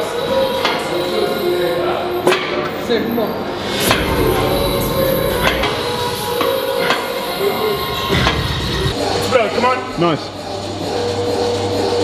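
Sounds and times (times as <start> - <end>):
background music: 3.5 - 12.0.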